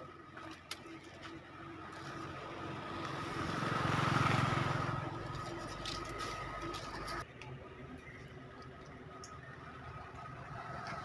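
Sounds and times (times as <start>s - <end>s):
motor vehicle passing by: 1.8s - 7.2s, 9.5s - 11.0s.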